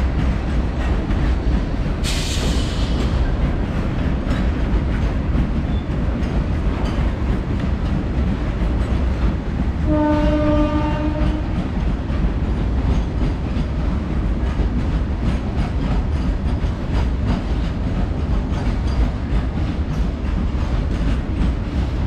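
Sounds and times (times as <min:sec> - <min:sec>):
freight train rumbling past: 0:00.0 - 0:22.0
wheels clattering over rail joints: 0:00.1 - 0:22.0
train horn: 0:09.8 - 0:11.7.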